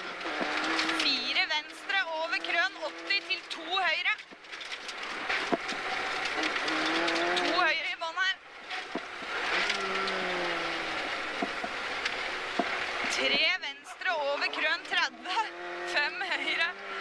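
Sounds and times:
car engine: 0.0 - 17.0.

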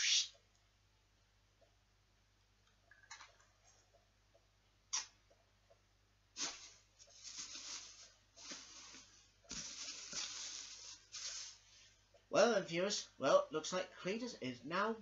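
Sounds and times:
plastic sheeting rustling: 6.4 - 11.9.

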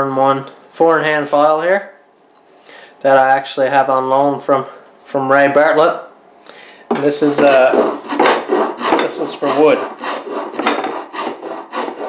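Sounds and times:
rasp filing wood: 7.3 - 12.0.

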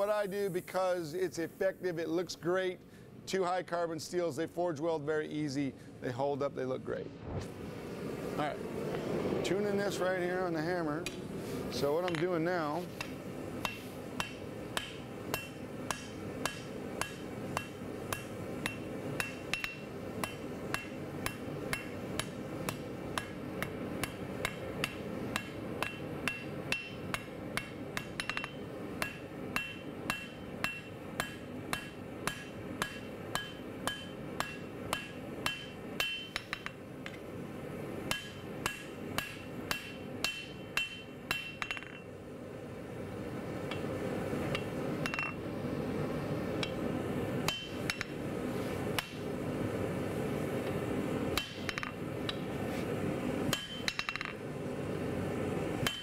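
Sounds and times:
background hum: 0.0 - 56.0
hammer striking steel on anvil: 11.0 - 11.2, 11.9 - 12.4, 13.0 - 37.3, 38.0 - 42.2, 43.7 - 43.9, 44.5 - 45.4, 46.6 - 46.8, 47.4 - 48.2, 49.0 - 49.3, 51.3 - 52.5, 53.5 - 54.4.

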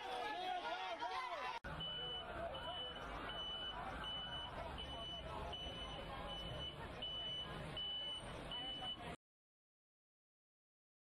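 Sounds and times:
faint voices: 0.0 - 9.2
reversing alarm beeping: 1.7 - 9.2.

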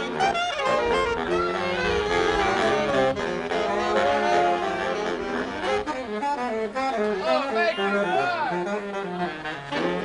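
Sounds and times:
saxophone quintet playing jazz: 0.0 - 10.0.

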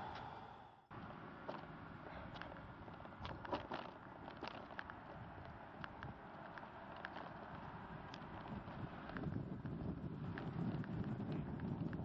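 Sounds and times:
bicycle clicks and rattles: 2.3 - 12.0.

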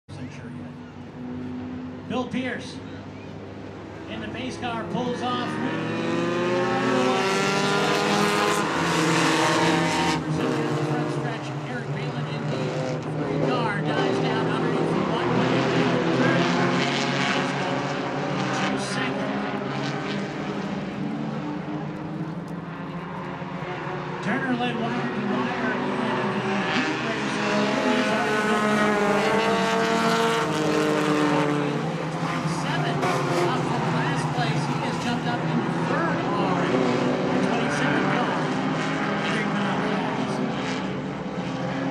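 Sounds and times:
race car engines revving: 0.1 - 41.9.

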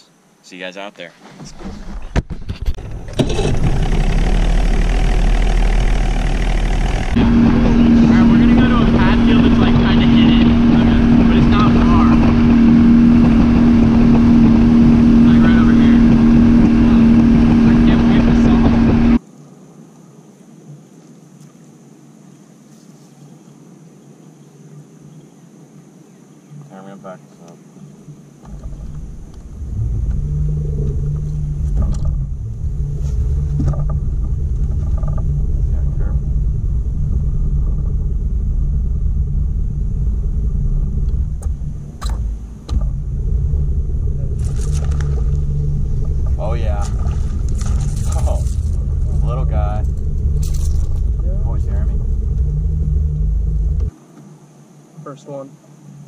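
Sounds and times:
loud low rumble: 2.7 - 19.2, 28.5 - 53.9.

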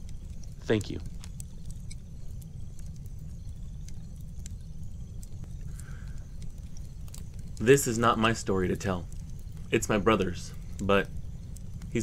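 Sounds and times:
low rumble: 0.0 - 12.0
wood fire crackling and popping: 0.0 - 12.0.

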